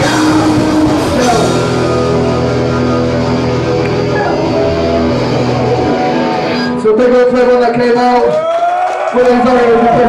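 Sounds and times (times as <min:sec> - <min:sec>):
electric guitars ringing chords: 0:00.0 - 0:07.7
bass guitar: 0:00.0 - 0:08.3.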